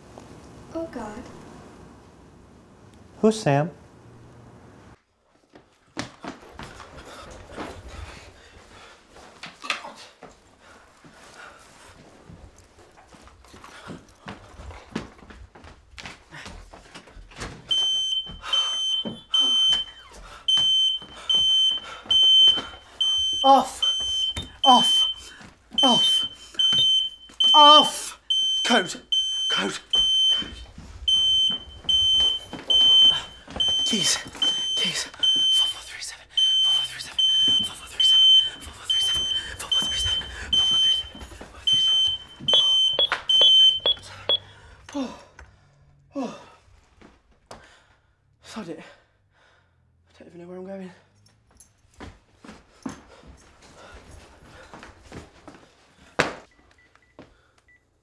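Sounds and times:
footsteps: 5.3 - 44.4
alarm panel beeping: 17.7 - 35.8, 36.4 - 44.4.

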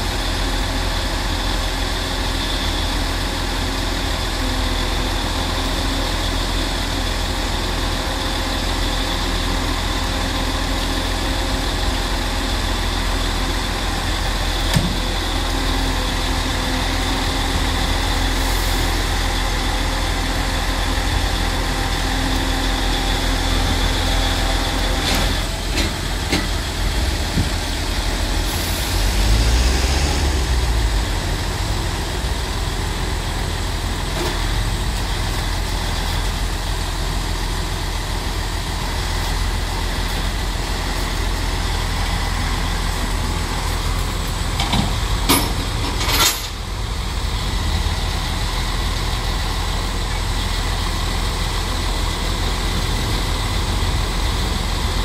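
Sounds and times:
diesel truck engine idling: 0.0 - 55.0.

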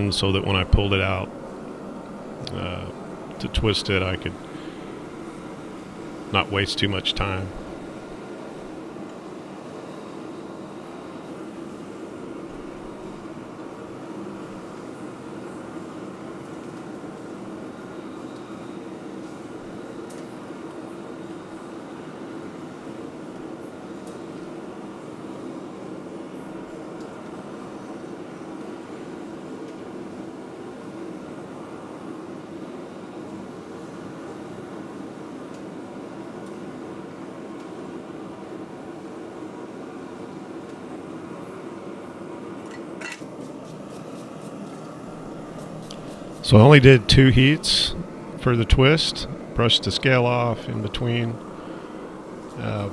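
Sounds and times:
forge rushing noise: 43.4 - 52.9.

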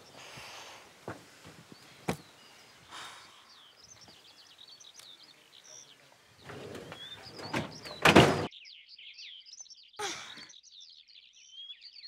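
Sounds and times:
birds chirping: 0.0 - 12.0
wooden trunk scraping: 6.4 - 8.5.

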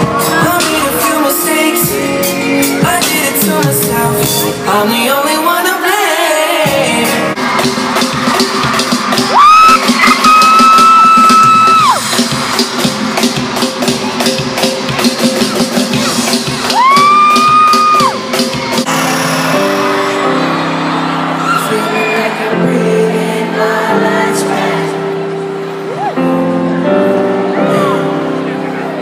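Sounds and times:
live pop music with drum beat: 0.0 - 20.4.

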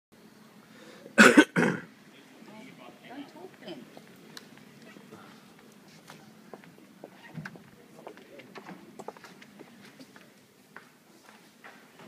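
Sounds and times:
person coughing: 1.2 - 1.9.

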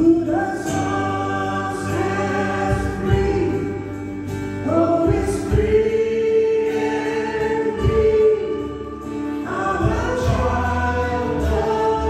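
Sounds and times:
acoustic guitar: 0.0 - 12.0
drums: 0.0 - 12.0
group singing worship song: 0.0 - 12.0
keyboard: 0.0 - 12.0.

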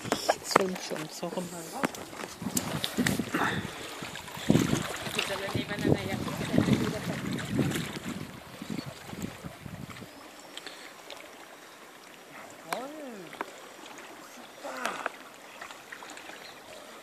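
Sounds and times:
water splashing: 0.0 - 17.0
wind gusting on microphone: 1.4 - 10.2.

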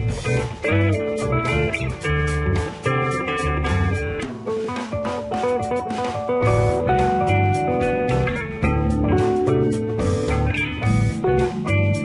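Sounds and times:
low bass notes: 0.0 - 4.4, 6.4 - 12.0
guitar background music: 0.0 - 12.0.

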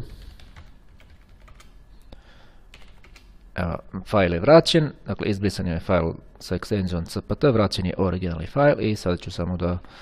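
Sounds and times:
keyboard typing: 0.0 - 1.8, 2.7 - 3.4.

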